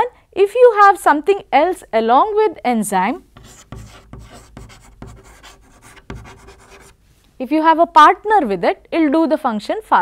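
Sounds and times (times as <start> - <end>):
chalk writing on chalkboard: 3.4 - 7.0.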